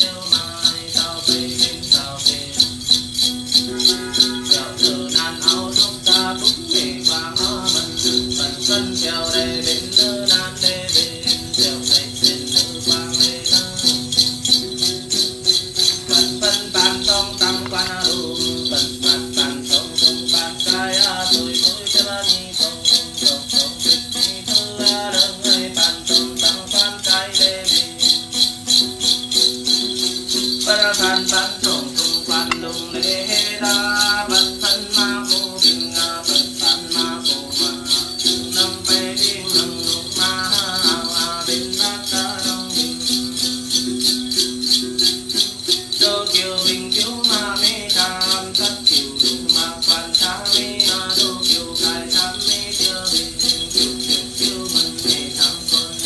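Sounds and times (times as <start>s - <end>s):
ritual chant singing: 0.0s - 56.0s
small brass bells shaken: 0.0s - 56.0s.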